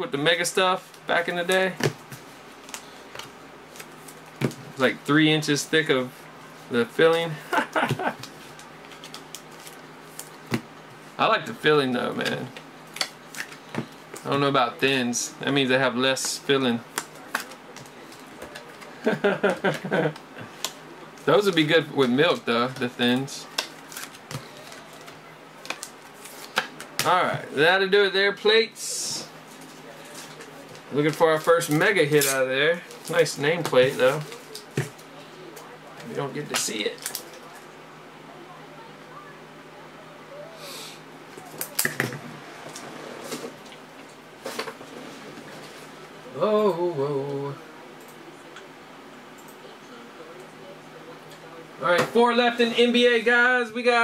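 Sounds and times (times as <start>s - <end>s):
man laughing: 7.3s - 8.3s, 18.9s - 20.5s.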